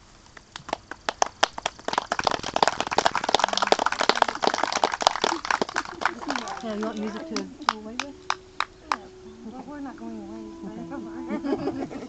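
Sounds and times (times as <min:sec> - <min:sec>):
small group applauding: 0:00.4 - 0:09.4.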